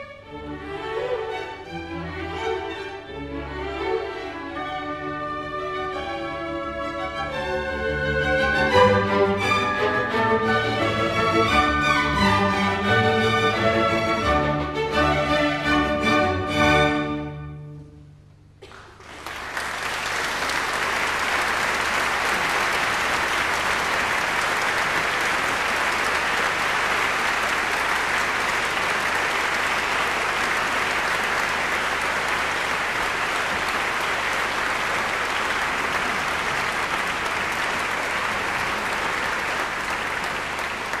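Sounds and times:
audience applauding: 18.6 - 41.0.

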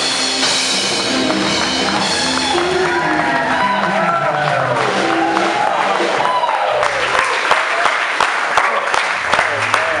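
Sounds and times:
live band song: 0.0 - 7.5
audience applauding: 0.0 - 10.0.

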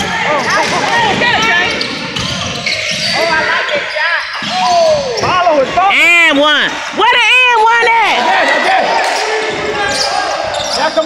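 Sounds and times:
players calling out: 0.0 - 11.0
basketball bouncing: 0.4 - 3.2
sneakers squeaking on court: 0.4 - 5.5, 9.9 - 11.0.

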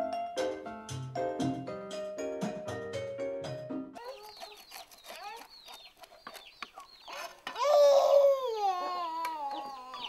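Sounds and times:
chickens clucking: 4.0 - 10.0
chicks peeping: 4.0 - 10.0.

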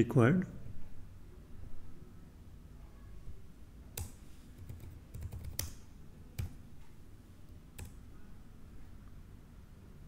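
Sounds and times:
computer keyboard typing: 3.9 - 6.6, 7.8 - 8.0.

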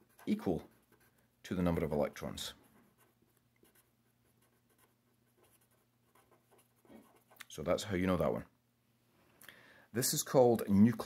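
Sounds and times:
felt-tip pen scratching on paper: 0.0 - 7.4.

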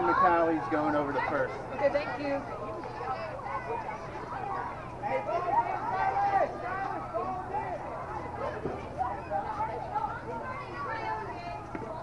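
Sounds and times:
babble of voices calling out: 0.0 - 12.0.

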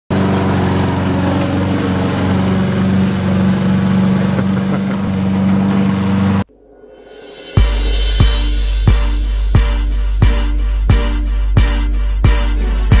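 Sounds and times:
lawn mower engine running: 0.1 - 6.5.

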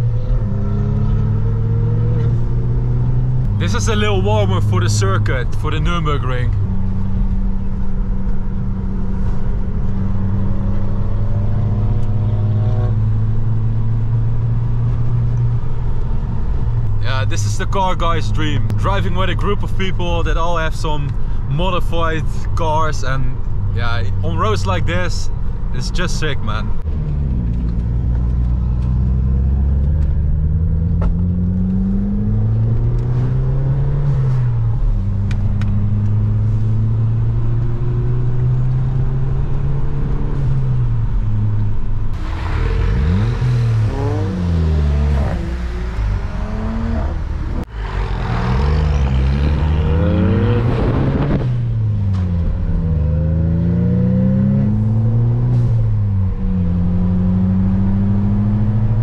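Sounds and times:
cars accelerating with loud exhaust: 0.0 - 59.0
car engine from inside cabin: 26.8 - 59.0.

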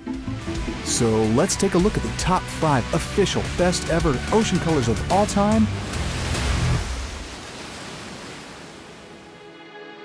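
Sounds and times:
rushing whoosh: 5.7 - 7.4.

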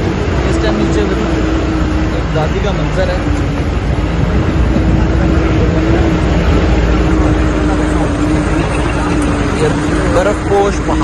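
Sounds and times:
heavy low rumble: 0.0 - 11.0
jeep engine hum: 0.0 - 11.0.

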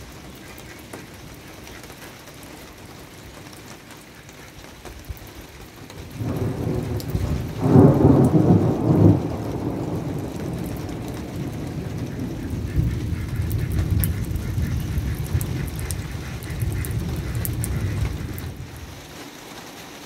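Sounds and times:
rain falling: 0.0 - 20.0
thunder rumbling: 5.9 - 19.1.

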